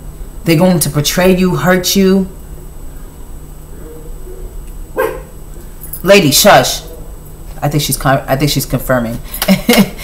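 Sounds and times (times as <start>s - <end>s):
dog barking: 3.8s - 5.4s.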